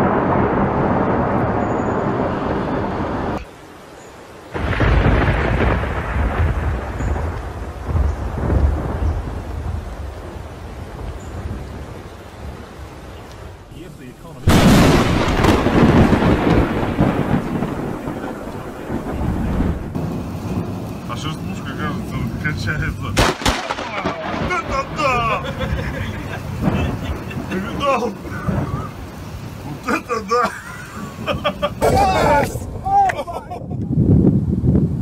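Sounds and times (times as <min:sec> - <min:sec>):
thunder clap and rumble: 0:00.0 - 0:03.5, 0:04.5 - 0:35.0.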